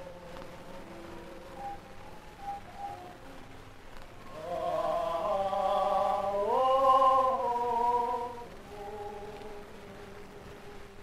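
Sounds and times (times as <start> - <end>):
cantorial liturgical singing: 0.0 - 11.0.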